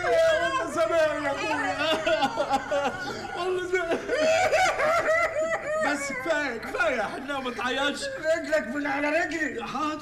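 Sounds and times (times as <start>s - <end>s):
person laughing and sobbing: 1.8s - 6.6s.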